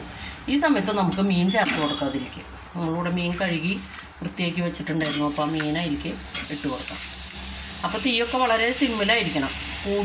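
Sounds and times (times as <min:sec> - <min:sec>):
onion masala frying in pan: 0:00.0 - 0:10.0
woman's voice: 0:00.5 - 0:07.0, 0:07.8 - 0:10.0.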